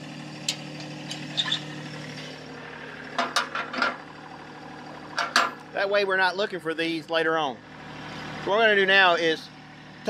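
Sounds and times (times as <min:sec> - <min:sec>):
diesel tractor engine idling: 0:00.0 - 0:10.0.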